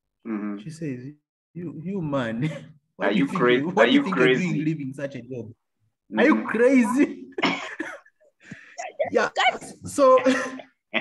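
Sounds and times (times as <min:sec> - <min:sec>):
man speaking: 0:00.3 - 0:07.4.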